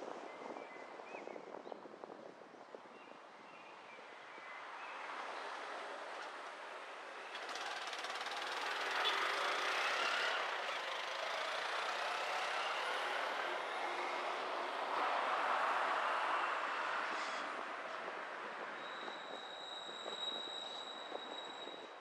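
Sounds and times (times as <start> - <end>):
passing vehicles: 4.1 - 22.0
tyres rushing on road: 5.0 - 22.0.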